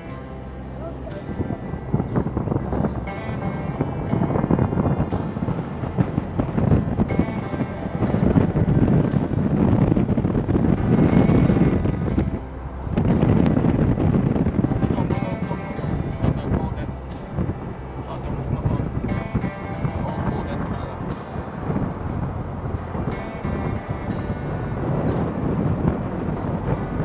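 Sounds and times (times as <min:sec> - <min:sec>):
music: 0:00.0 - 0:27.0
wind buffeting microphone: 0:00.0 - 0:27.0.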